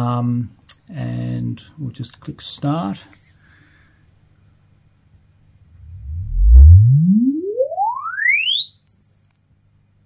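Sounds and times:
sine sweep tone gliding up: 5.7s - 9.4s.

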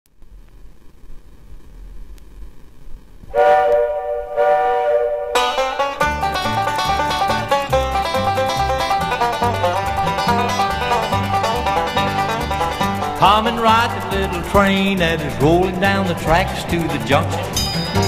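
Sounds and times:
faint hiss: 0.1s - 5.8s
held chord like train whistle: 3.3s - 13.2s
bass notes: 3.3s - 18.0s
acoustic guitar: 5.4s - 18.0s
fast rolling banjo: 5.4s - 18.0s.

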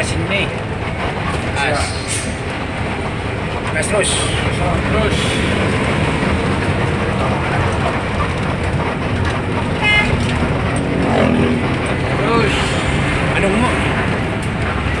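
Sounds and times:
bus engine and road noise: 0.0s - 15.0s.

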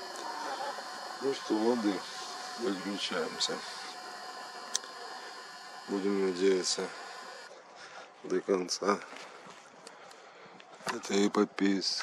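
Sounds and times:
faint high steady tones: 0.0s - 7.6s
faint background hiss: 0.0s - 12.0s.

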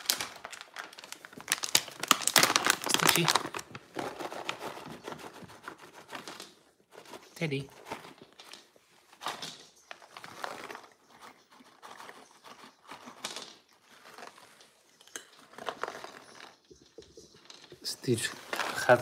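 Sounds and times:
treat packet crinkling: 0.0s - 6.5s, 7.3s - 19.0s.

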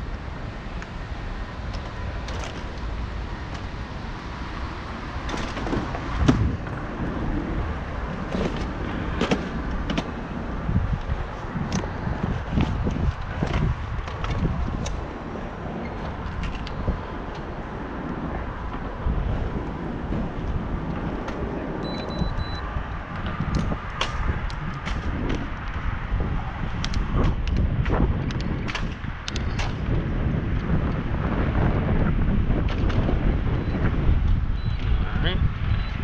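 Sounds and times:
wind buffeting microphone: 0.0s - 36.0s
sharp clicks and knocks: 8.2s - 10.2s, 26.8s - 29.9s.

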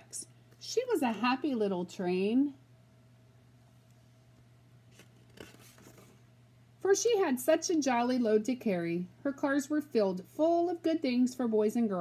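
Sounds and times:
woman reading aloud: 0.0s - 2.6s, 6.8s - 12.0s
faint low hum: 0.0s - 12.0s
book pages turning: 4.9s - 6.2s
paper rustling: 4.9s - 6.2s.

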